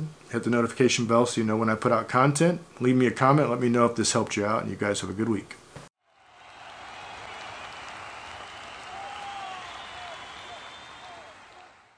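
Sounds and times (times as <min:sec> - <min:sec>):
crowd applause and cheering: 0:06.0 - 0:11.9.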